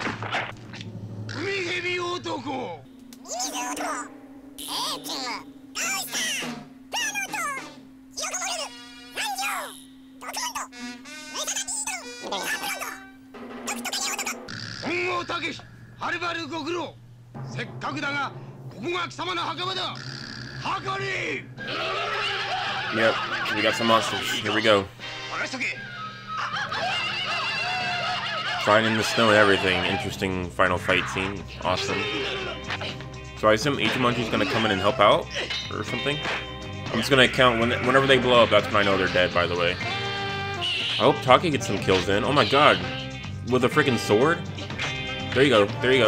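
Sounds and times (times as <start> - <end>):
wavering high melody: 2.8 - 13.3.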